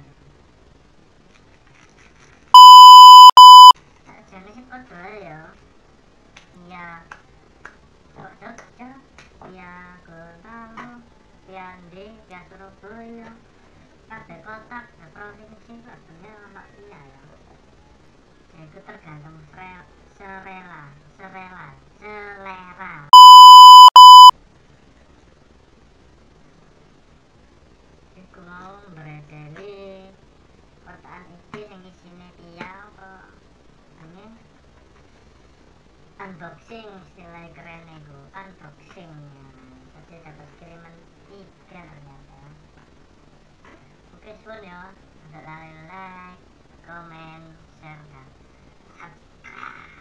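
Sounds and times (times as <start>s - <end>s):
faint room noise: 0.0s - 50.0s
high-pitched electronic beep: 2.6s - 3.8s, 23.1s - 24.3s.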